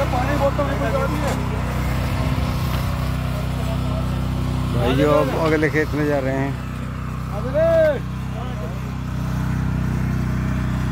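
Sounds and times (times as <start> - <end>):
tiller engines running: 0.0 - 10.9.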